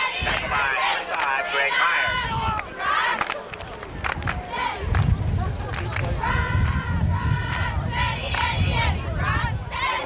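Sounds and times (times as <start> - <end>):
people shouting and calling out: 0.0 - 3.5.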